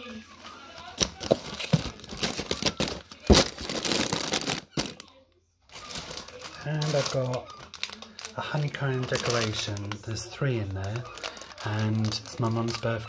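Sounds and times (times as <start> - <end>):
packaging rustling and crinkling: 0.8 - 5.1, 5.7 - 13.0.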